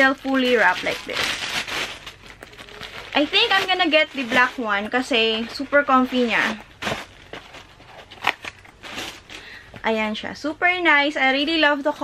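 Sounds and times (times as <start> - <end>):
woman speaking: 0.0 - 1.4, 3.1 - 6.7, 9.8 - 12.0
packing wrap rustling: 0.0 - 10.0.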